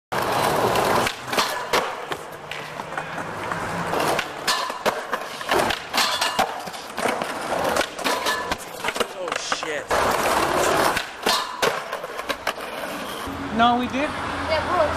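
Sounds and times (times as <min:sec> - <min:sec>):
skateboard rolling over tiles: 0:00.1 - 0:13.3.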